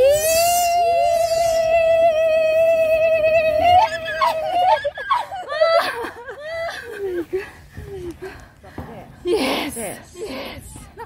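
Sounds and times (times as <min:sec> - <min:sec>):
woman squealing: 0:00.0 - 0:05.6.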